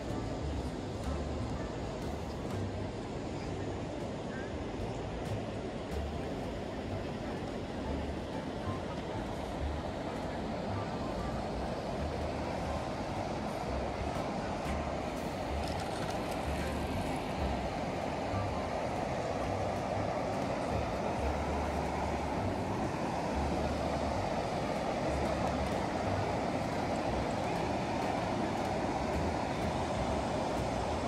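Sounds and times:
river water rushing over weir: 0.0s - 31.0s.

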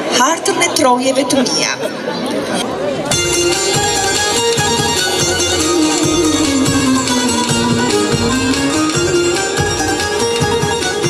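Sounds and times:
plucked string folk music: 3.1s - 11.0s.

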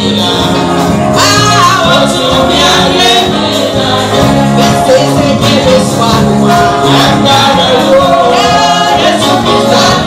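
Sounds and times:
band playing: 0.0s - 10.0s
voices singing gospel: 0.0s - 10.0s.

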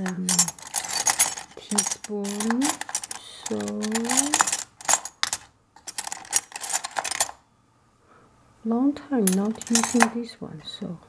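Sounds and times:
spoons clinking and rattling: 0.0s - 7.4s, 9.3s - 10.1s.

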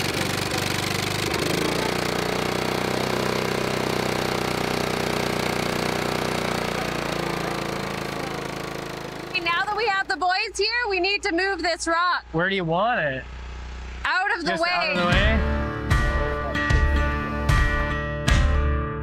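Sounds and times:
trencher gasoline engine running: 0.0s - 17.0s.

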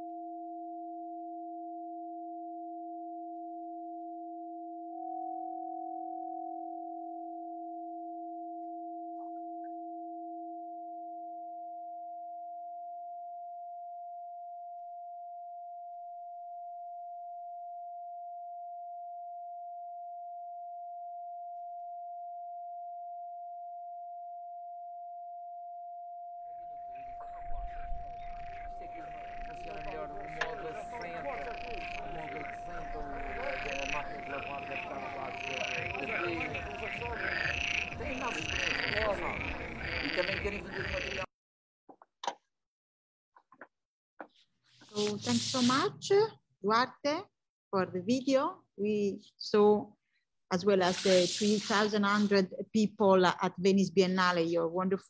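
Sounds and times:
low electronic tone: 0.0s - 41.3s
high electronic tone: 26.6s - 41.3s
rising electronic chirp: 26.6s - 41.3s
noisy irregular sound: 26.7s - 41.3s, 44.8s - 46.2s, 50.8s - 52.4s.

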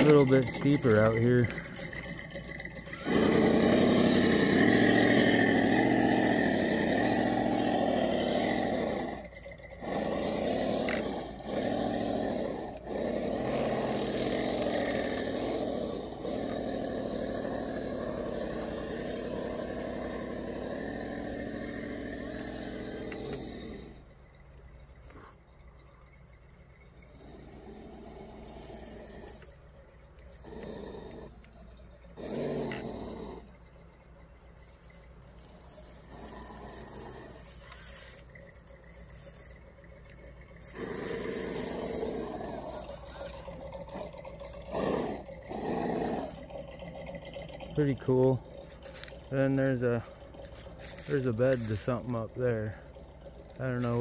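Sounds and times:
toy car electric motor whining: 0.0s - 24.1s, 34.6s - 52.6s.

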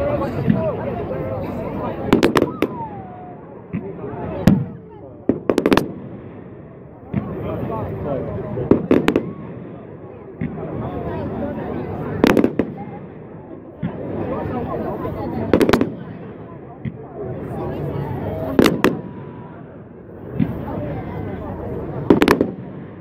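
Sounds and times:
fireworks bangs: 1.8s - 23.0s.

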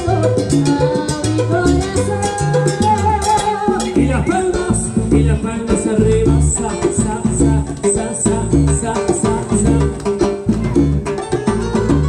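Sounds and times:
salsa band playing live: 0.0s - 12.0s.

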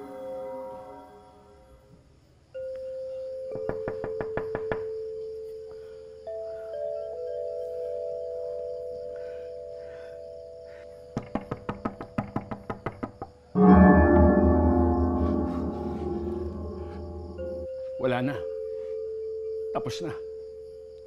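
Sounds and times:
suspense film score: 2.7s - 21.0s
sharp knocks: 3.6s - 4.9s, 11.1s - 13.4s
sustained ringing tones: 13.6s - 20.7s.

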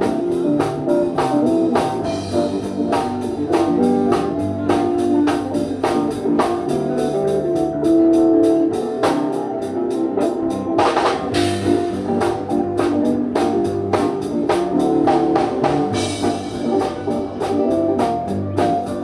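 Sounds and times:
drum kit beat: 0.0s - 19.0s
electric guitar: 0.0s - 19.0s.

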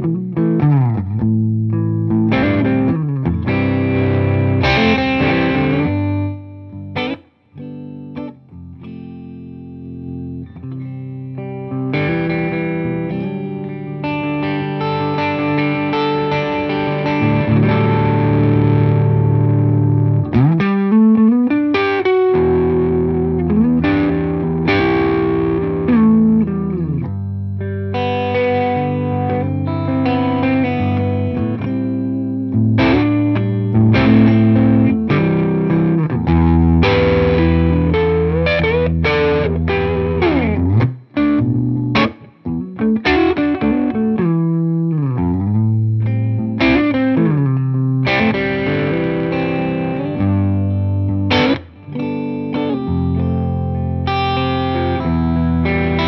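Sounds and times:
overdriven electric guitar: 0.0s - 56.0s.

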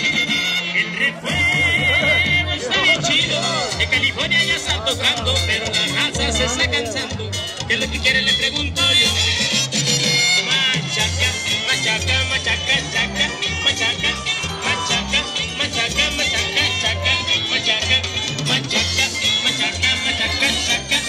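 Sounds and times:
latin dance music over loudspeakers: 0.0s - 21.0s.

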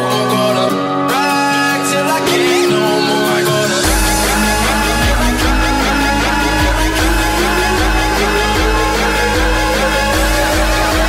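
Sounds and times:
repeating synth stabs: 3.2s - 11.0s
pounding kick beat: 3.7s - 11.0s.

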